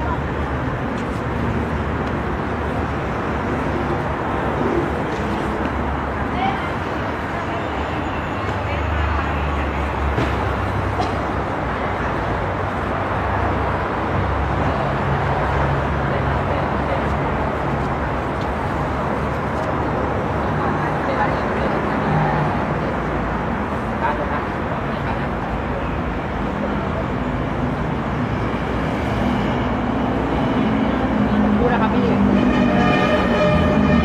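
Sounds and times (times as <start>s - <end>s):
outdoor traffic noise: 0.0s - 34.0s.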